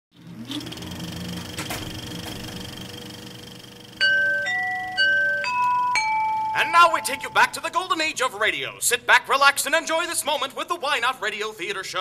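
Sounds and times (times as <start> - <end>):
chime notes: 4.0 - 8.0.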